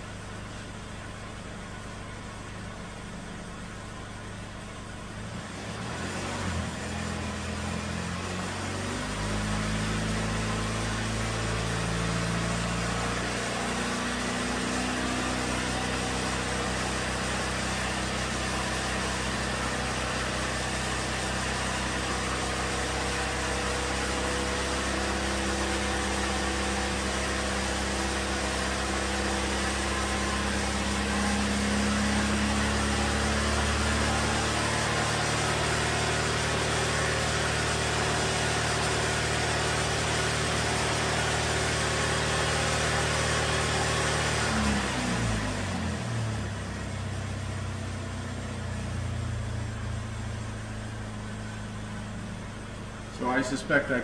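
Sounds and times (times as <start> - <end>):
car engine at fast idle: 0.0 - 54.0.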